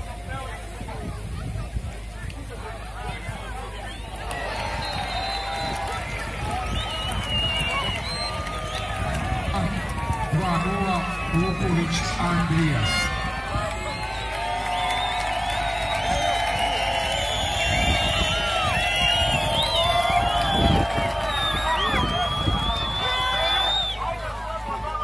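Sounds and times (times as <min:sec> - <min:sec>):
crowd chanting and shouting: 0:08.8 - 0:14.2.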